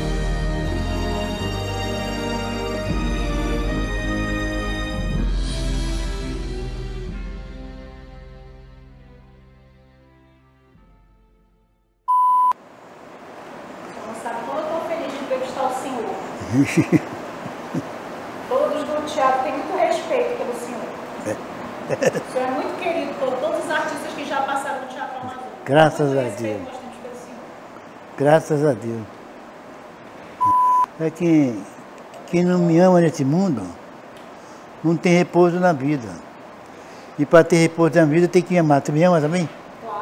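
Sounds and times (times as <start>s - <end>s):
faint room hiss: 0.0s - 10.8s, 12.1s - 40.0s
soft music: 0.0s - 12.0s
loud electronic beep: 12.1s - 12.6s, 30.4s - 30.9s.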